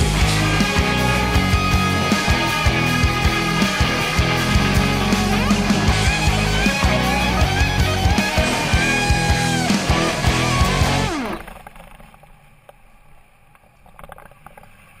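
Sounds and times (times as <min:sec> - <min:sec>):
falling pitch slide: 0:00.0 - 0:11.5
rock music with guitar: 0:00.0 - 0:11.5.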